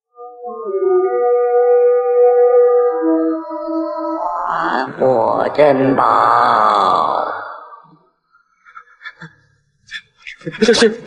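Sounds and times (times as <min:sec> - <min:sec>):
woman speaking: 0:04.4 - 0:07.6, 0:10.4 - 0:11.0.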